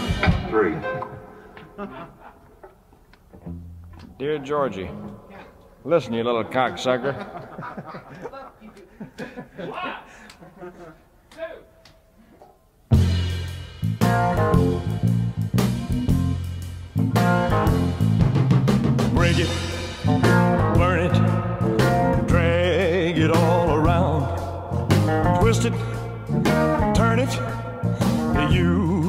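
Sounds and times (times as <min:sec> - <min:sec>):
rock-blues band playing: 0:00.0 - 0:01.3, 0:12.9 - 0:29.0
male lead vocal: 0:19.2 - 0:29.0.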